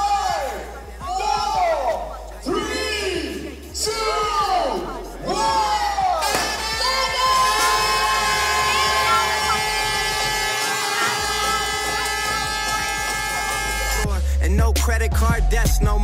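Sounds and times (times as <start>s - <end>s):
crowd cheering and shouting: 0.0s - 14.1s.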